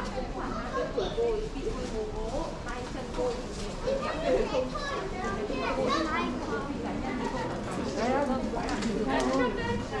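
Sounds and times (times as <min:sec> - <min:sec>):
children's voices: 0:00.0 - 0:01.8, 0:03.3 - 0:10.0
indistinct chatter: 0:00.0 - 0:10.0.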